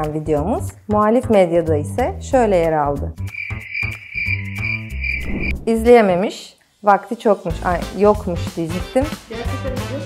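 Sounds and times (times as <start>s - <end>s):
faint background music: 0.0s - 3.4s, 5.3s - 10.0s
crickets chirping: 3.2s - 5.8s.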